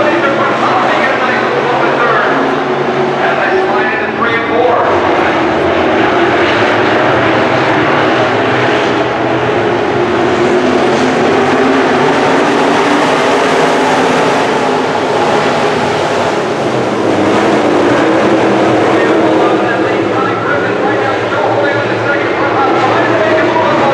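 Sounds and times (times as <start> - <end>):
race car engines running hard: 0.0 - 23.9.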